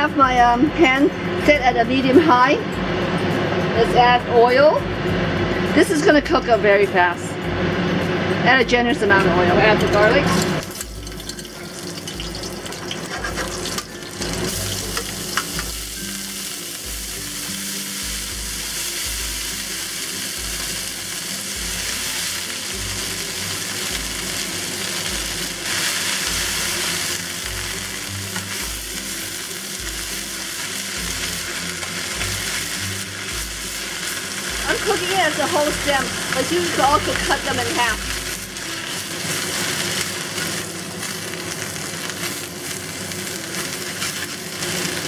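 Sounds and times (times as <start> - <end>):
hot oil sizzling in a pan: 9.8 - 45.0
steel tongs tossing leaves: 19.6 - 45.0.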